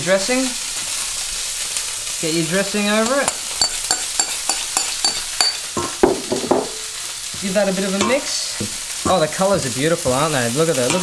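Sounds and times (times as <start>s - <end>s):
meat sizzling in a frying pan: 0.0s - 11.0s.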